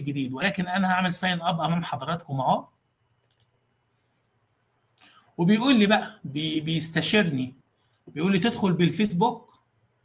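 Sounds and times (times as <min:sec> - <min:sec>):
faint computer mouse click: 0:03.2 - 0:03.6.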